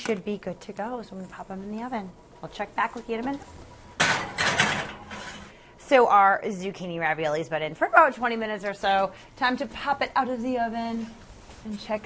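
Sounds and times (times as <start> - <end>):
oven door clatter: 4.0 - 5.4
baking dish scraping and rattling: 4.0 - 5.6.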